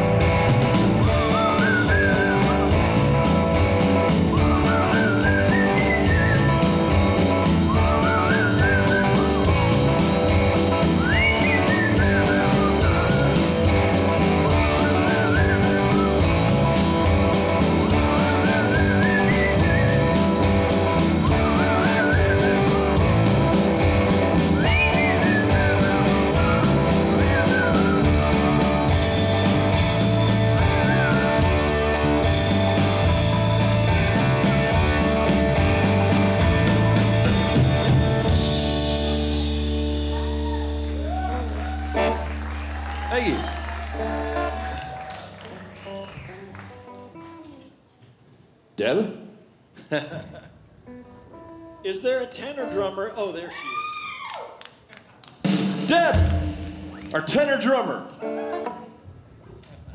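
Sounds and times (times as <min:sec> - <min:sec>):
guitar lead with bending notes: 0:00.0 - 0:42.3, 0:58.1 - 0:59.0
drum kit: 0:00.0 - 0:47.6, 0:55.4 - 0:57.8
bass guitar: 0:00.0 - 0:47.8, 0:55.4 - 0:59.9
electric guitar: 0:00.0 - 0:47.8, 0:58.1 - 0:59.2.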